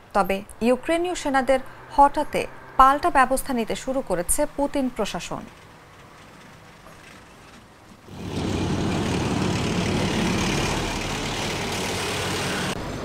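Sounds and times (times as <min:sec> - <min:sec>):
heavy vehicle driving past: 0:08.1 - 0:13.0.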